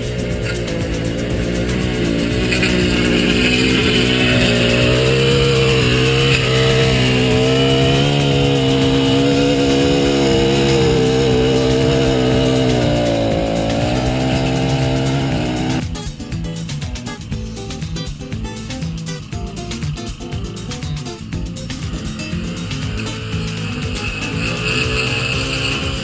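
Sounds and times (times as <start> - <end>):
small petrol engine running: 0.0 - 26.0.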